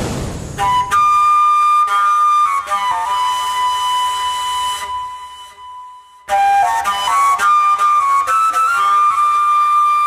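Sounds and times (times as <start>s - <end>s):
flute long held note: 0.6s - 10.0s.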